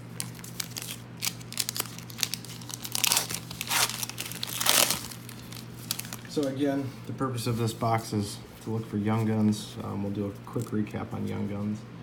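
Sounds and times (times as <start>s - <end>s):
foil wrapper crinkling and tearing: 0.0s - 6.5s.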